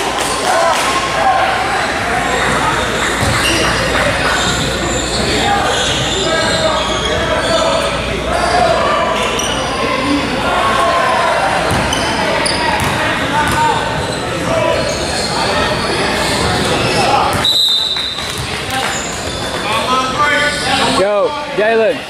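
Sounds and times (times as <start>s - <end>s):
voices echoing in gym: 0.0s - 22.0s.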